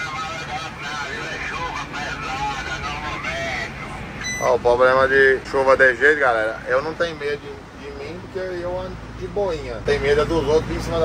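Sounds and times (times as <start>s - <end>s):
truck cab engine drone: 0.0s - 11.0s.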